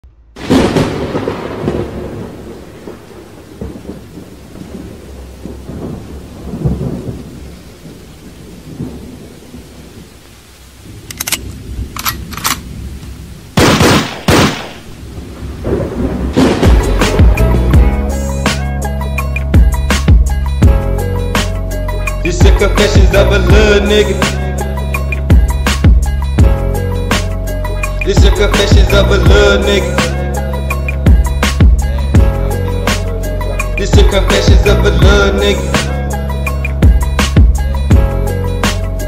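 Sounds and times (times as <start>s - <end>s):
thunder rumbling and cracking: 0.3s - 39.0s
rain: 0.4s - 28.4s, 29.0s - 39.0s
music beat: 16.4s - 39.0s.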